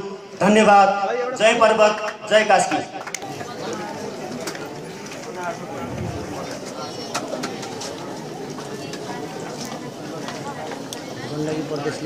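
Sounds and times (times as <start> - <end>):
outdoor crowd murmur: 0.0 - 12.0.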